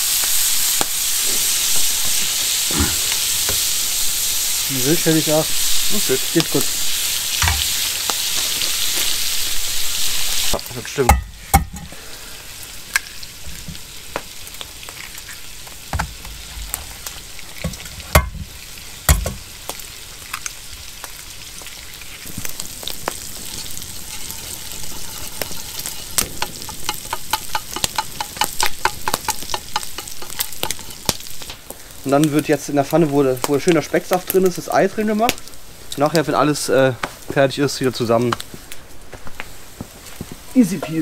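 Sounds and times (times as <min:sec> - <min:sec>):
food sizzling in a pan: 0:00.0 - 0:41.0.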